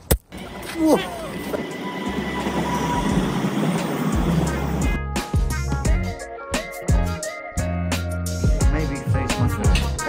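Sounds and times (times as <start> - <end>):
tram passing on rails: 0.3 - 5.8
background music with plucked notes: 4.6 - 10.0.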